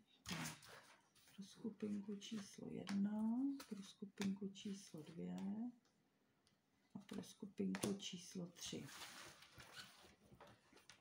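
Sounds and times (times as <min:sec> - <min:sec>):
cards rustling and tapping: 0:01.9 - 0:05.5.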